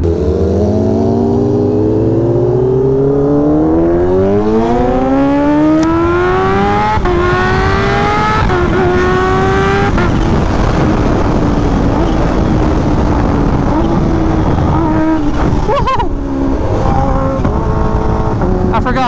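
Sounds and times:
motorcycle engine accelerating: 0:00.0 - 0:19.0
wind rush: 0:00.0 - 0:19.0.

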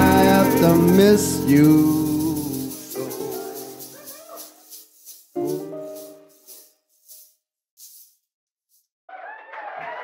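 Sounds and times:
rattling percussion strokes: 0:00.0 - 0:08.2.

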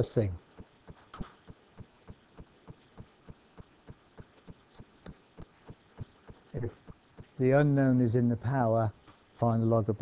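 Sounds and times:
faint regular ticking: 0:00.0 - 0:10.0.

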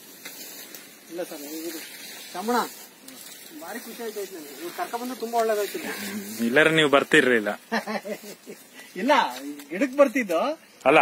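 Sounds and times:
background hiss: 0:00.0 - 0:11.0
voices talking: 0:01.0 - 0:11.0.

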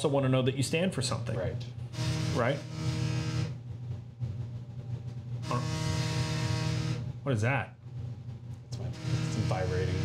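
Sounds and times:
steady low hum: 0:00.0 - 0:10.0
phone vibrating on a desk: 0:01.9 - 0:03.6, 0:05.4 - 0:07.2, 0:08.8 - 0:10.0.

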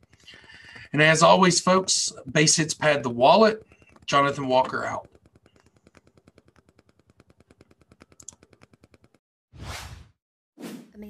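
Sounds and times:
rapid faint ticking: 0:00.0 - 0:09.2.

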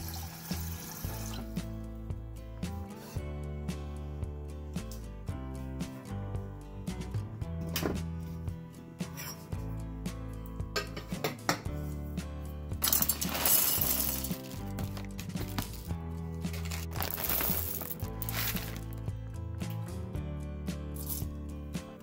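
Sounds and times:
background music with beat: 0:00.5 - 0:22.0
coffee grinder chopping beans: 0:12.9 - 0:15.9, 0:16.5 - 0:19.0.

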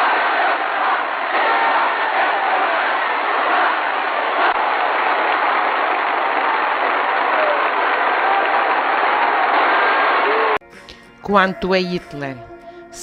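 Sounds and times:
muffled crowd applause and cheering: 0:00.0 - 0:11.0.

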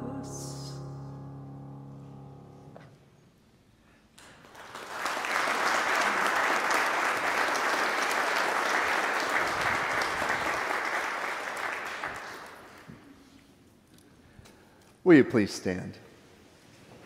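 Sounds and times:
congregation applauding: 0:04.2 - 0:13.1.

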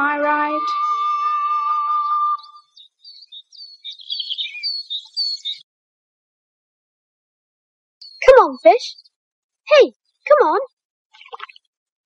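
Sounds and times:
high bird chirps: 0:00.0 - 0:05.6, 0:08.0 - 0:09.2, 0:11.1 - 0:11.7.

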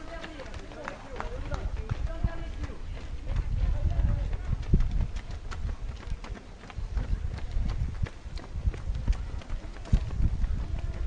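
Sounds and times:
running footsteps on pavement: 0:00.0 - 0:11.0.

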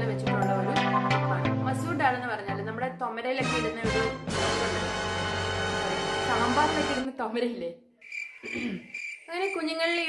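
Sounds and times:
woman's voice: 0:00.0 - 0:04.7, 0:06.2 - 0:07.9, 0:08.6 - 0:10.0.

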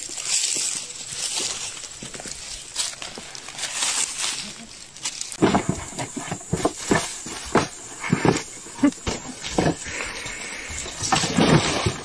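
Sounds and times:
rustling in leaf litter: 0:00.0 - 0:07.4.

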